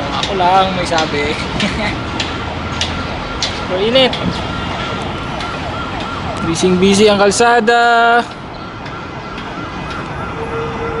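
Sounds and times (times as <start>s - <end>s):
busy road traffic: 0.0s - 11.0s
faint warbling siren: 2.4s - 7.4s, 8.4s - 11.0s.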